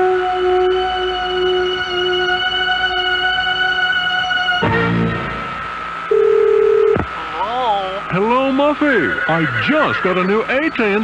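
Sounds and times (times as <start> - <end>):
telephone dial tone: 6.1 - 7.0.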